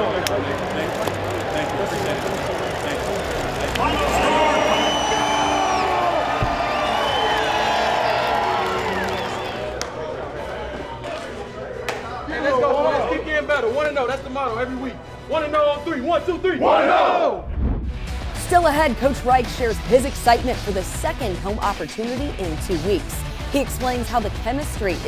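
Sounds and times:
crowd cheering and shouting: 0.0 - 11.1, 16.5 - 17.5.

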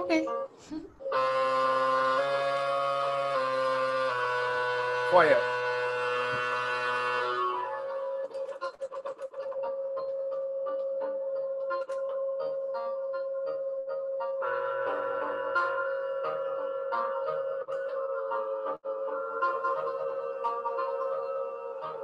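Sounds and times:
synthesizer drone tone: 0.0 - 8.6, 9.4 - 22.0
sustained synthesizer chord: 1.0 - 8.4, 14.4 - 22.0
clicky synthesizer blips: 15.6 - 18.8.

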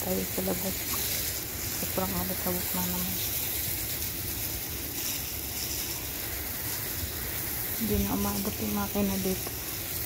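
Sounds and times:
water spraying onto tiles: 0.0 - 10.0.

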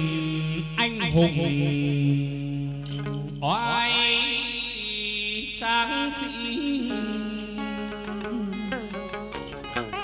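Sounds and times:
man singing wavering notes: 0.0 - 10.0
moon lute: 0.0 - 10.0.

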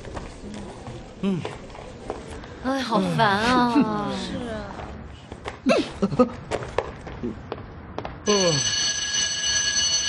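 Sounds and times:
electric school bell ringing: 8.3 - 10.0.

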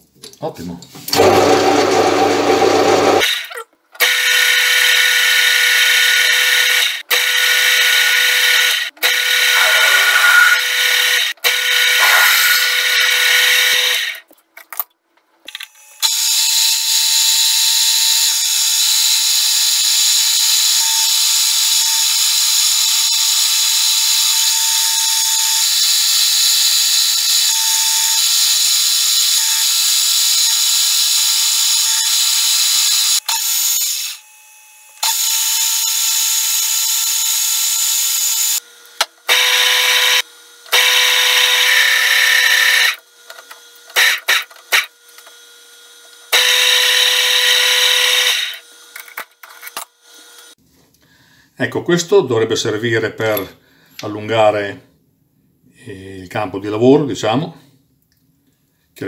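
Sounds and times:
metal lathe machine noise: 7.8 - 14.1
constant machine whine: 42.2 - 50.6.

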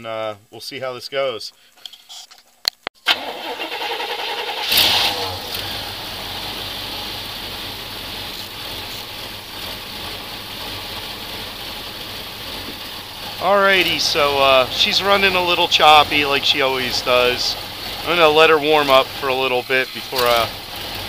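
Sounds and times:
truck engine starting and idling: 3.0 - 21.0
starter motor clicks: 3.1 - 5.9, 20.0 - 21.0.

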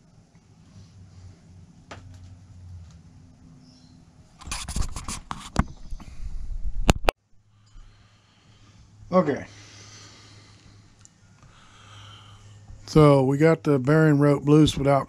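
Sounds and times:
faint low hum: 0.0 - 15.0.

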